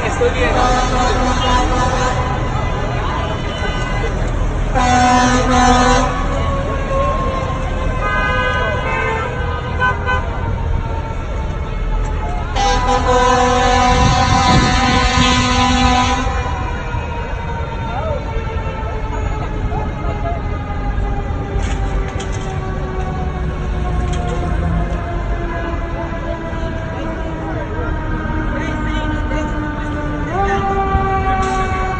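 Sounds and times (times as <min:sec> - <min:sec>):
long vehicle horn blast: 0:00.2 - 0:07.0, 0:07.9 - 0:10.4, 0:12.5 - 0:16.9
steady horn-like tone: 0:00.2 - 0:07.2, 0:12.5 - 0:16.9.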